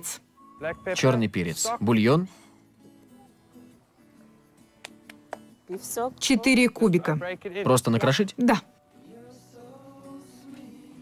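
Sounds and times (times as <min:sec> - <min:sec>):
faint guitar background music: 0:00.0 - 0:11.0.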